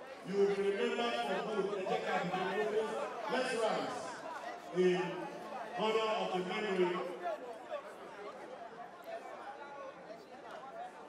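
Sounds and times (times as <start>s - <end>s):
babble of voices: 0.0s - 9.4s.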